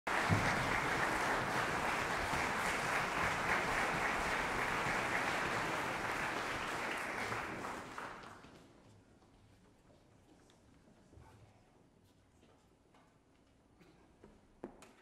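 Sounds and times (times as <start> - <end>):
audience applauding: 0.0 - 8.6.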